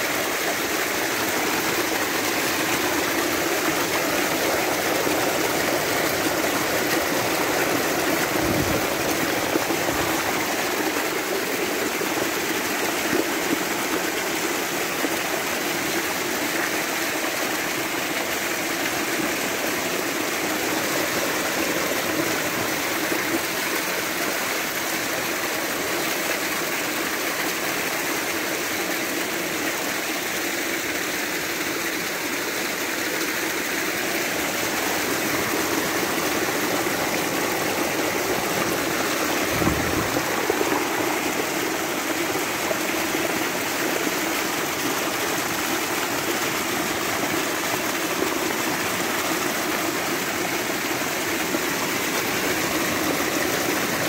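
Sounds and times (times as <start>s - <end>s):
water splashing down rock: 34.2s - 49.6s.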